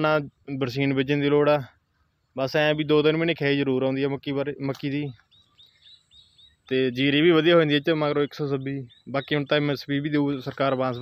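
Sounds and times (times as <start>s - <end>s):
man talking: 0.0s - 1.8s, 2.4s - 5.2s, 6.7s - 11.0s
faint high bird chirps: 4.6s - 11.0s.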